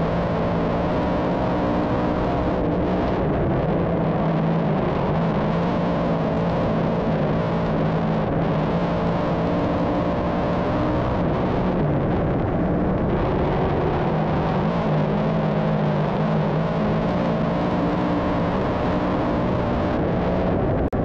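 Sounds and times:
racing car engine droning: 0:00.0 - 0:21.0.

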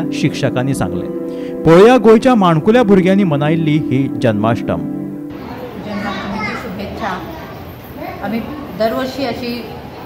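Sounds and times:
children chattering and calling: 0:05.3 - 0:10.0.

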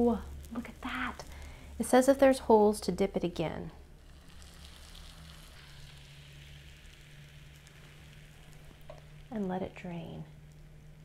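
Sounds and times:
batter sizzling on pan: 0:00.0 - 0:11.0.

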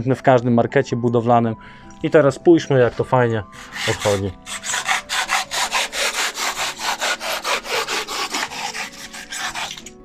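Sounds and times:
hacksaw sawing through foam: 0:03.6 - 0:10.0.

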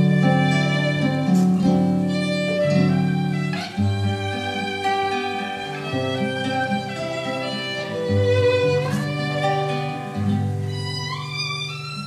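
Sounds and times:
guitar accompaniment: 0:00.0 - 0:12.0
violin melody: 0:00.0 - 0:12.0.

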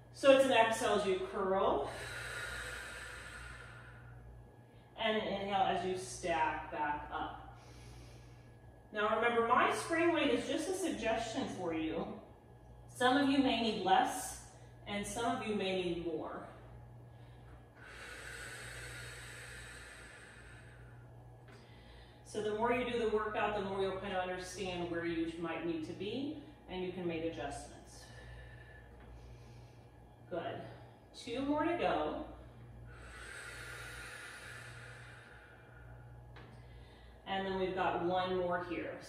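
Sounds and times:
low steady hum: 0:00.0 - 0:39.0
woman exhaling: 0:00.8 - 0:04.2, 0:32.9 - 0:37.2.

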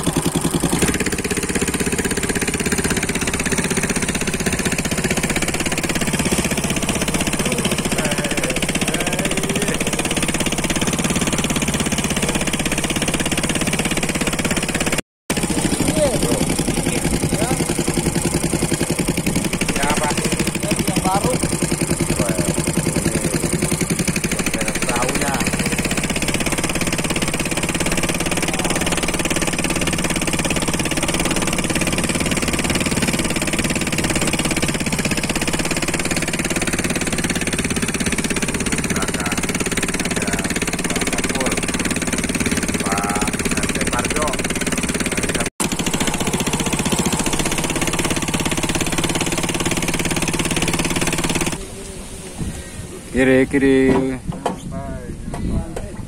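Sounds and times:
boat engine running: 0:00.0 - 0:56.0
voices: 0:07.3 - 0:10.2, 0:15.4 - 0:26.0, 0:27.9 - 0:29.2, 0:38.8 - 0:41.7, 0:42.6 - 0:44.4, 0:51.6 - 0:56.0.

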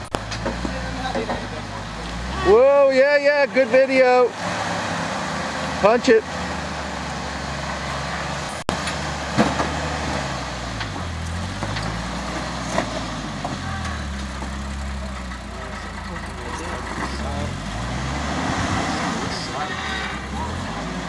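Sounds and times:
off-road engine revving: 0:00.0 - 0:21.0.

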